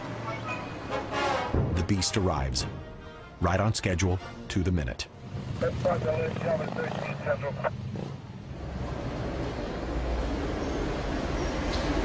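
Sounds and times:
vehicle engines running: 4.5s - 12.0s.

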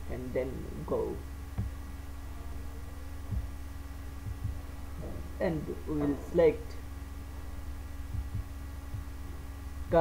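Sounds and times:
low background hum: 0.0s - 10.0s
soft low thumps: 1.4s - 2.0s, 3.1s - 5.4s, 7.3s - 10.0s
person speaking: 4.3s - 6.8s.

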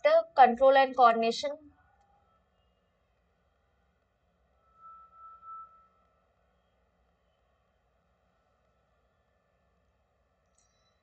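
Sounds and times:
faint high-pitched tone: 3.8s - 9.6s.

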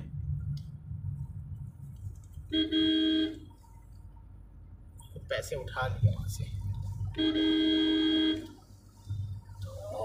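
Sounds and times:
engine and road rumble: 0.0s - 10.0s
car horn: 2.5s - 3.5s, 7.0s - 8.7s.

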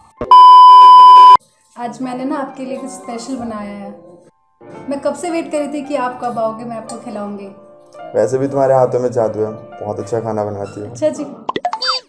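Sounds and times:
censor bleep: 0.3s - 1.4s.

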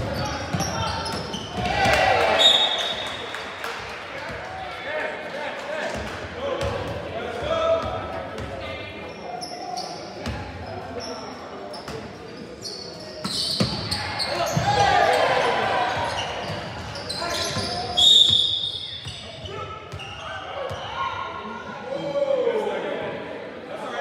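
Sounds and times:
sneakers squeaking on court: 0.0s - 3.2s, 8.4s - 21.0s.

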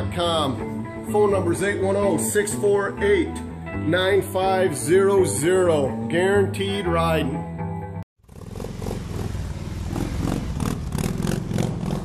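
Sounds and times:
motorcycle engine running: 8.2s - 12.0s.

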